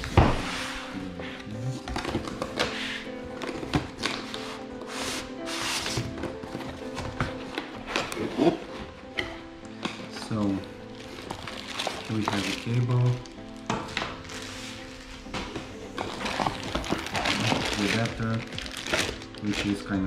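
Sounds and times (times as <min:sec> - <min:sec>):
background music with sustained tones: 0:00.0 - 0:20.0
cardboard and foam packaging rustling: 0:00.0 - 0:20.0.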